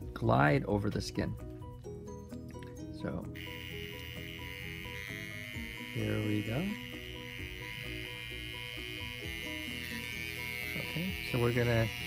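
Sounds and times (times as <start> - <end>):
background music: 0.0 - 12.0
electric pen high-pitched buzz: 3.3 - 12.0.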